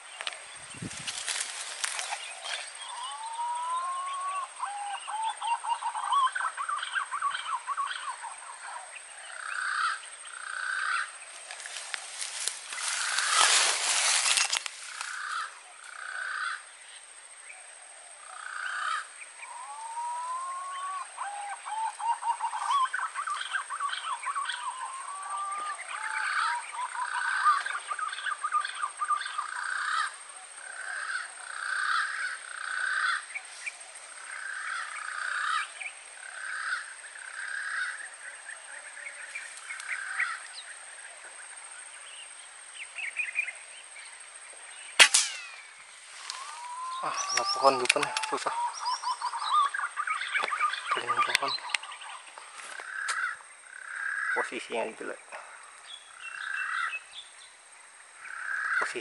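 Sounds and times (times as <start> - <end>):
pigeons calling: 0.0 - 16.7, 18.0 - 41.2, 44.9 - 54.6, 56.0 - 57.1, 58.2 - 59.0
sharp crack: 45.0 - 46.5.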